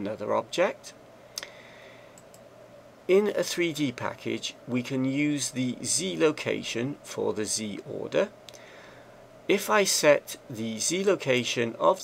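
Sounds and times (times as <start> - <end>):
faint steady hum: 0.0 - 12.0
computer mouse click: 2.2 - 2.5.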